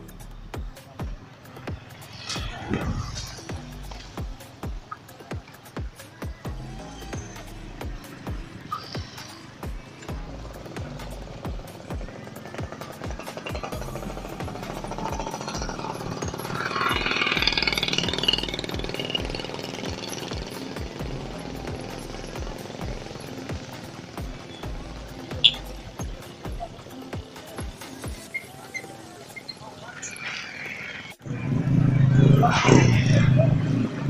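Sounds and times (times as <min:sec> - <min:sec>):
electronic music with fast beat: 0:00.0 - 0:29.5.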